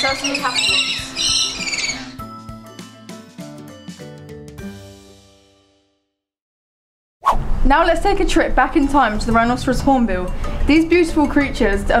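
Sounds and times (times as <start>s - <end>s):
lorikeets screeching: 0.0s - 2.3s
background music with held notes: 0.0s - 6.0s, 8.8s - 12.0s.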